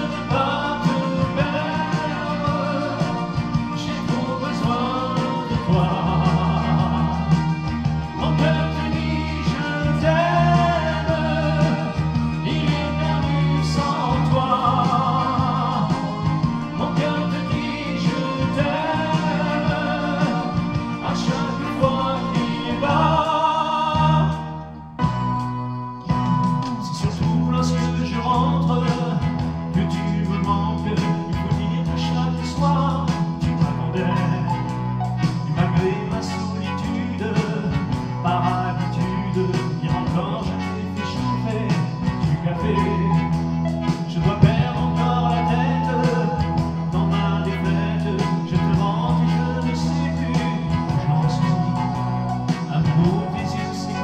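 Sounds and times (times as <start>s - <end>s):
man singing into microphone: 0.0s - 24.6s, 26.7s - 54.0s
recorded backing music: 0.0s - 54.0s.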